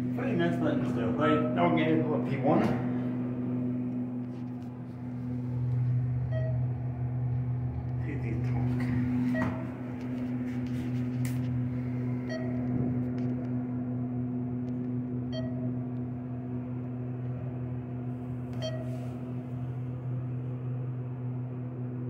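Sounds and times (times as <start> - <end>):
elevator hum: 0.0 - 22.0
short electronic beeps: 6.3 - 6.7, 12.2 - 12.6, 15.3 - 15.7, 18.6 - 18.9.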